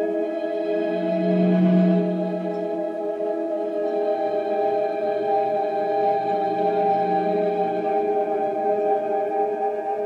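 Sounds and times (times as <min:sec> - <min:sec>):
electric organ chord drone: 0:00.0 - 0:09.6.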